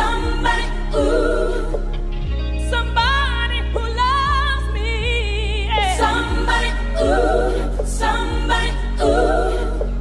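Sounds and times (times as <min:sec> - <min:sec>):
choir-like voices: 0:00.0 - 0:10.0
synthwave music: 0:00.0 - 0:10.0.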